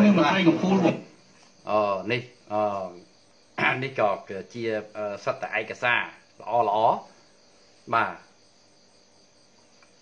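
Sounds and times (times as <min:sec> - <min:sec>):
man speaking: 0:00.0 - 0:07.2, 0:07.9 - 0:08.4
faint high-pitched chirring: 0:00.0 - 0:10.0.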